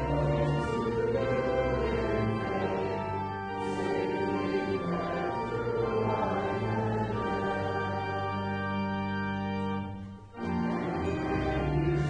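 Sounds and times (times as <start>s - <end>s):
congregation singing a hymn: 0.0s - 12.0s
organ chords: 0.0s - 12.0s.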